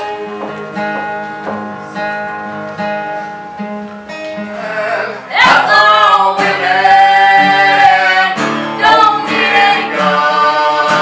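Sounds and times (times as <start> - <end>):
strummed acoustic guitar: 0.0 - 11.0
person singing: 4.5 - 11.0.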